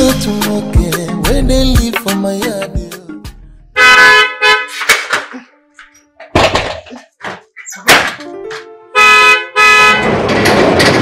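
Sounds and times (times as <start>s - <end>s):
car horn honking: 3.8s - 4.9s, 8.9s - 10.3s.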